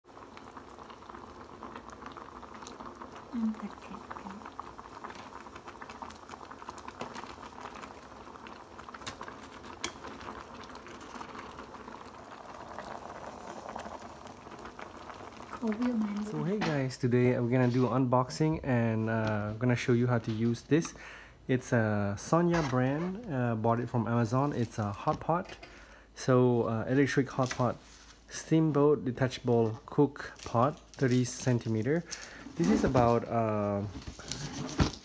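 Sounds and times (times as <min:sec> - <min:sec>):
broth boiling in a hotpot: 0:00.0 - 0:35.0.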